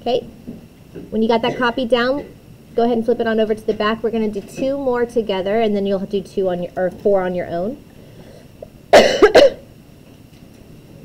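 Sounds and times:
person coughing: 1.4 - 2.4, 9.0 - 9.7.

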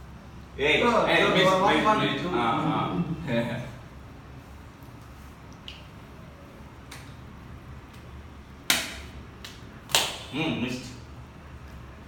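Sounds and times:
sharp hand slaps: 6.8 - 7.2, 7.9 - 10.3.

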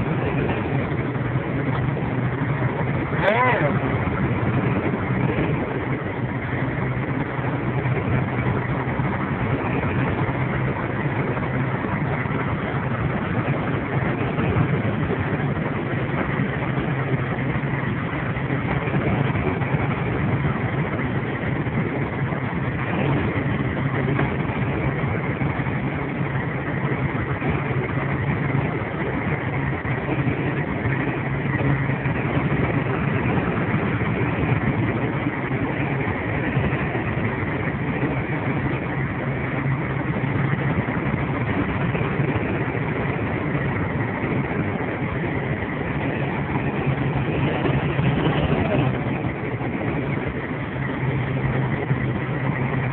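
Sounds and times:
road noise on wet road: 0.0 - 52.9
truck engine drone: 0.0 - 52.9.

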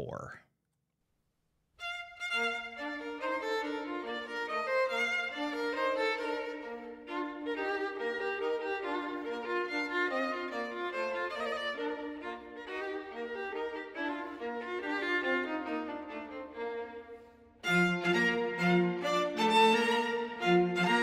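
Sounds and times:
string quartet playing: 2.2 - 21.0.

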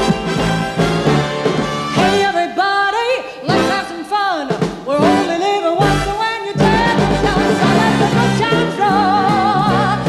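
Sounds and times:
big band playing: 0.0 - 10.0.

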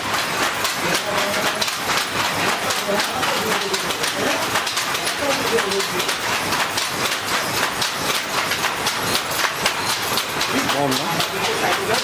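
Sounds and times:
looms clattering: 0.0 - 12.0.

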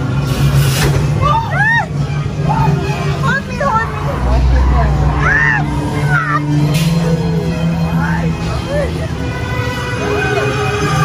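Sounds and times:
deep rumble: 0.0 - 10.0
low droning hum: 0.0 - 11.0.

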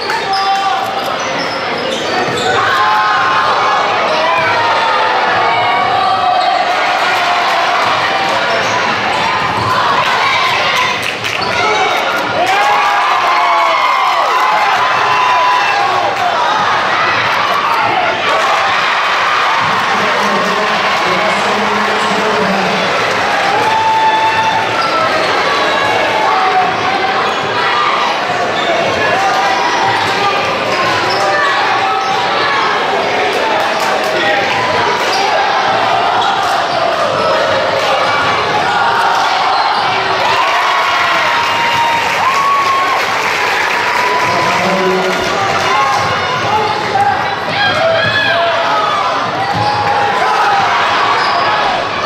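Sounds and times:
crowd chatter: 0.0 - 52.0.

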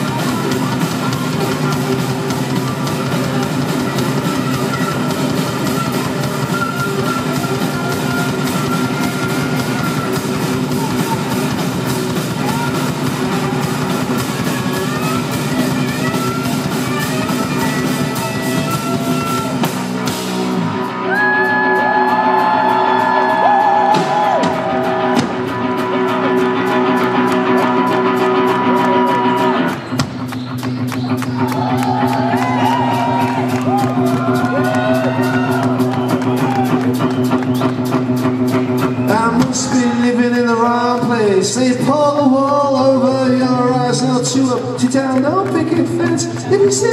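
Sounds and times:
live rock band playing: 0.0 - 46.9.

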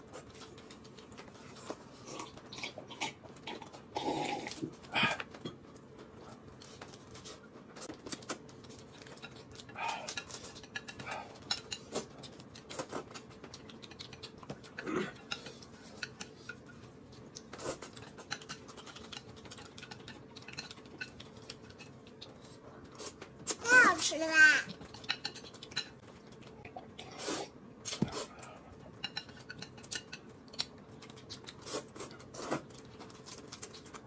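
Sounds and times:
chewing and eating noises: 0.0 - 34.0.

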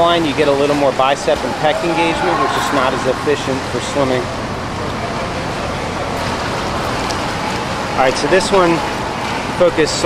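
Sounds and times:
rushing water of swimmer: 0.2 - 10.0.

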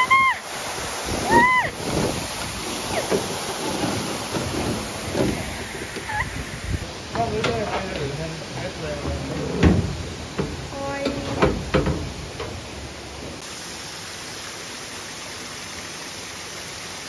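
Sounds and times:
waterfall splashing onto water: 0.0 - 9.1, 13.4 - 17.0
thump: 9.6 - 10.6, 11.4 - 12.5.

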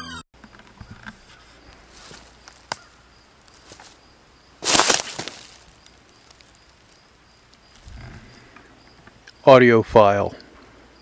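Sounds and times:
twig snapping crackles: 1.7 - 4.0, 4.6 - 7.8.

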